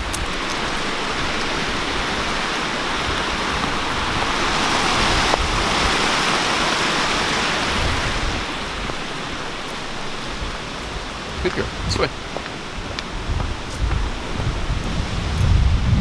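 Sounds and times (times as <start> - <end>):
stream rushing: 0.0 - 16.0.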